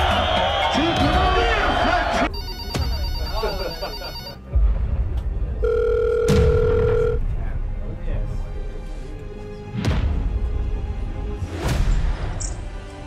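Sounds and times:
electronic telephone ringing: 2.3 - 4.4, 5.6 - 7.2
steady beep: 2.3 - 4.4.

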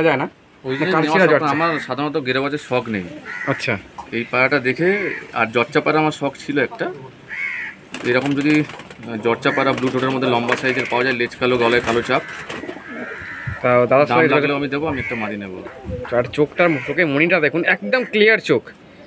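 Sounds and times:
people talking: 0.0 - 7.2, 8.0 - 12.3, 13.5 - 18.8
pigeons cooing: 6.8 - 17.0.

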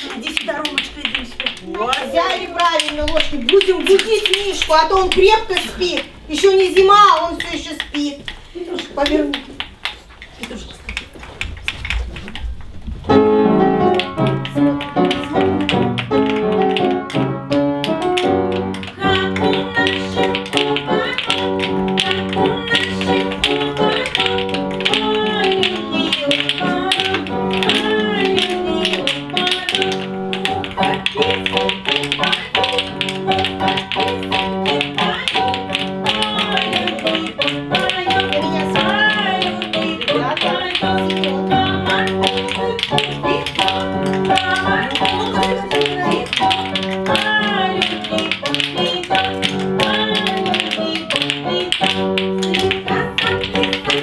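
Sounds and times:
wooden spoons clacking: 0.0 - 54.0.

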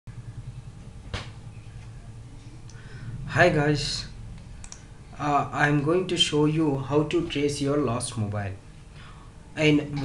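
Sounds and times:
low steady hum: 0.1 - 10.0.

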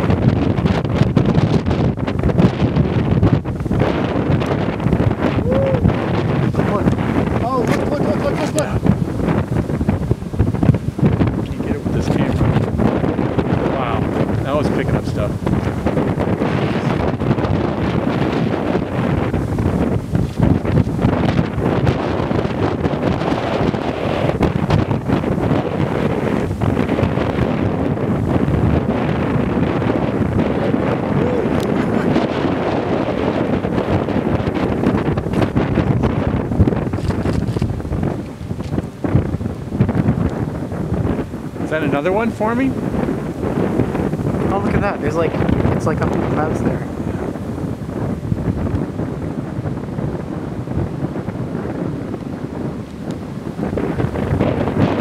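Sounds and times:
strong wind buffeting microphone: 0.0 - 55.0.

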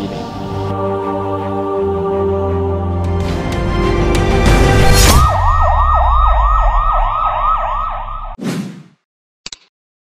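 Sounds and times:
siren yelp: 5.0 - 8.4.

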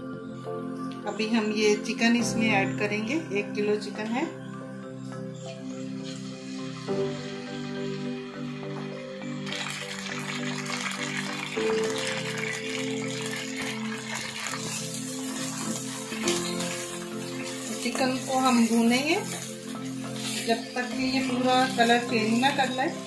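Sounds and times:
background music: 0.0 - 23.0
chicken sizzling in oil: 5.9 - 8.1, 9.3 - 23.0.

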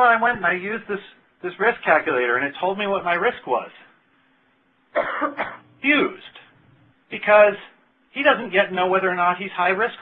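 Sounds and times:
speech: 0.0 - 4.0, 5.8 - 10.0
man coughing: 5.0 - 5.7.

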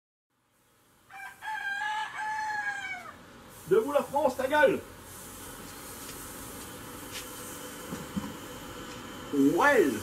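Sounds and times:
rooster crowing: 1.1 - 3.3.

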